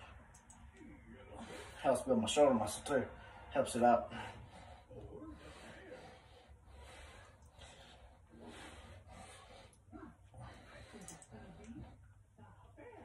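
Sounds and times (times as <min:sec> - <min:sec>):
man breathing in soft puffs: 0:01.2 - 0:12.4.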